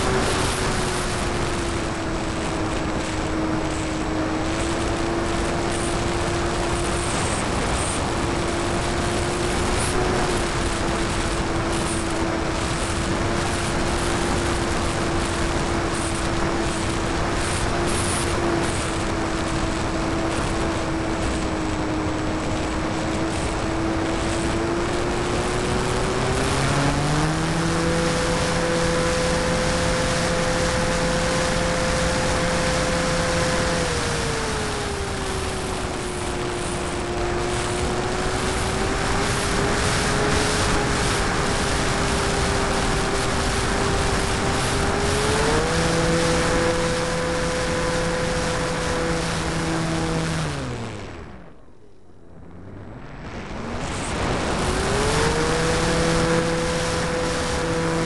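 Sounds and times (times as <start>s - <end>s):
model plane motor and propeller: 0.0s - 58.0s
rush of air: 0.0s - 58.0s.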